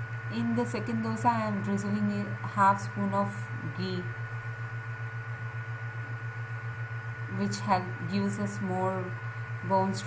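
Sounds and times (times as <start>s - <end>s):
pulsing low hum: 0.0s - 10.0s
thin steady tone: 0.0s - 10.0s.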